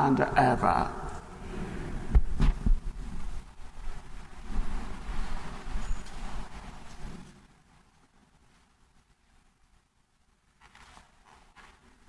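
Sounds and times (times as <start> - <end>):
rustling and shuffling movement: 1.2 - 9.9, 10.5 - 12.0
dull low thumps: 1.8 - 3.5.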